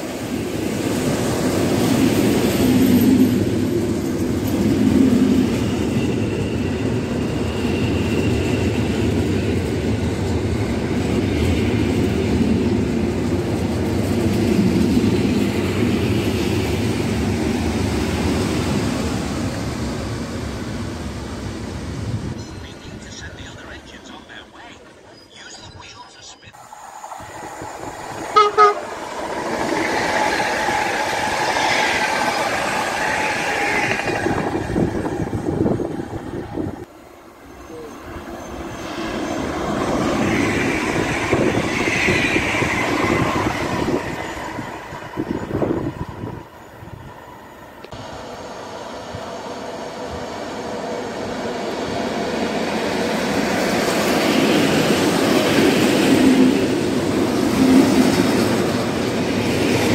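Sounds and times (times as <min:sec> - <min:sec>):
train pulling into platform: 0:00.0 - 0:59.9
trains passing at speed: 0:00.0 - 0:59.9
train horn toot: 0:28.3 - 0:28.9.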